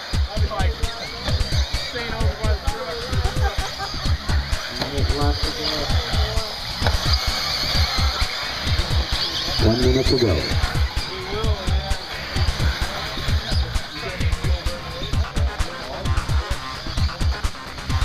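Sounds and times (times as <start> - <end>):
people talking: 0.0 - 18.0
rc cars racing high-pitched hum: 0.0 - 18.0
thumps on microphone: 6.8 - 7.2.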